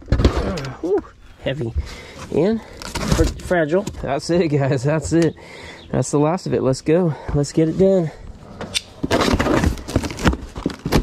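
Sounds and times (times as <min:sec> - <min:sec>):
packing paper rustling: 0:02.0 - 0:03.7, 0:09.0 - 0:11.0.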